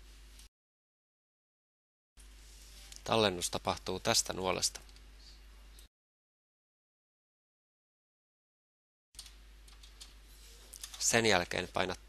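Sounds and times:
mains hum: 0:02.2 - 0:05.9, 0:09.2 - 0:12.0.

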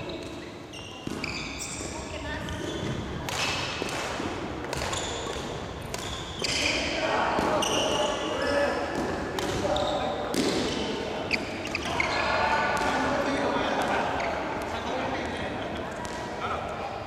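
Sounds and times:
shoes squeaking on wooden floor: 0:00.0 - 0:03.0, 0:04.9 - 0:06.8, 0:07.5 - 0:08.6
players' voices: 0:00.0 - 0:17.0
rackets striking shuttlecock: 0:02.4 - 0:06.7, 0:08.9 - 0:09.7.

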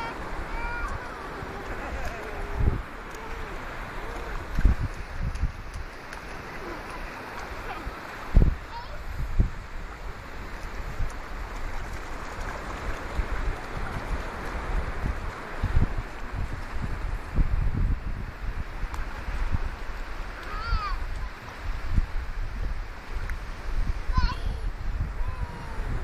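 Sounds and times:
sea surf hissing: 0:00.0 - 0:26.0
wind buffeting microphone: 0:00.0 - 0:26.0.

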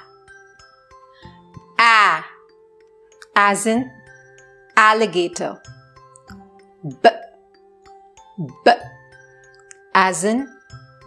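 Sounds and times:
soft background music: 0:00.0 - 0:11.0
woman saying a letter sound: 0:01.8 - 0:02.4.

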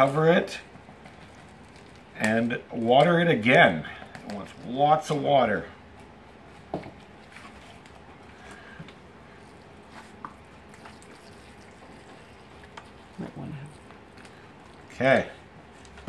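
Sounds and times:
person speaking: 0:14.8 - 0:15.5.

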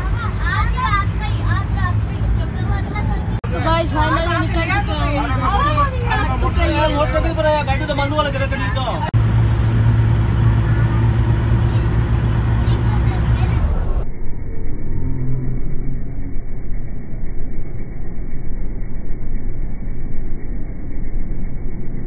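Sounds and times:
passengers' voices: 0:00.0 - 0:09.2
bus engine rumble and road noise: 0:00.0 - 0:22.0.

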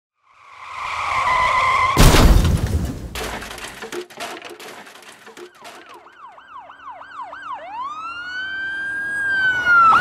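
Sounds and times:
car tyres screeching: 0:00.3 - 0:02.0.

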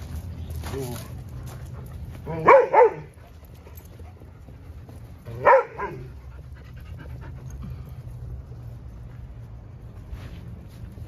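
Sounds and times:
dog barking: 0:02.3 - 0:03.1, 0:05.3 - 0:06.1
dog yelp: 0:02.3 - 0:03.1.

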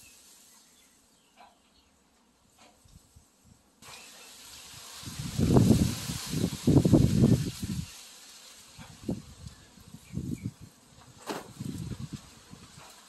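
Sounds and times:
steady hiss of wind: 0:00.0 - 0:13.0
wind gusts buffeting microphone: 0:04.7 - 0:07.9, 0:08.8 - 0:12.9.

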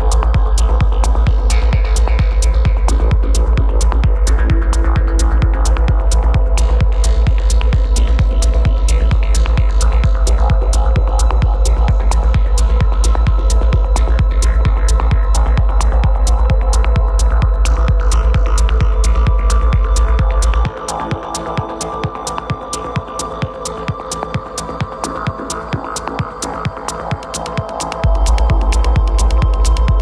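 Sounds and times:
heavy sub-bass: 0:00.0 - 0:30.0
techno music: 0:00.0 - 0:30.0
ticking percussion: 0:00.0 - 0:30.0.

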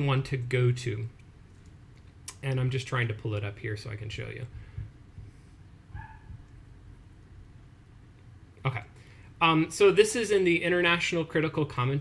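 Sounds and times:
faint low background hum: 0:00.0 - 0:12.0.

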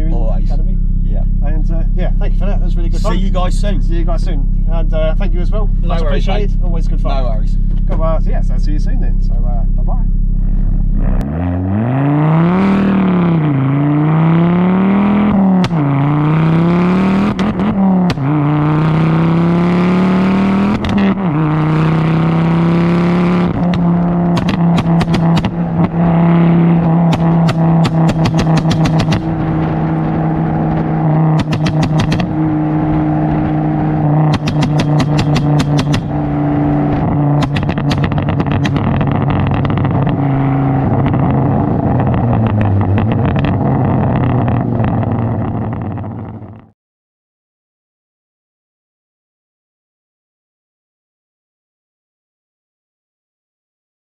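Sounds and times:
car engine accelerating hard: 0:00.0 - 0:46.7
exhaust crackles: 0:00.0 - 0:46.7.

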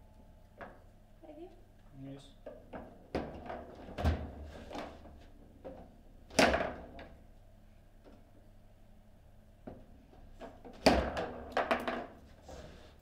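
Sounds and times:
foosball knocks and clacks: 0:10.8 - 0:12.2.

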